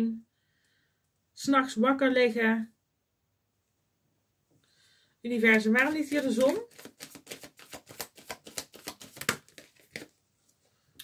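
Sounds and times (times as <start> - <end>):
cards being shuffled: 5.4 - 10.2.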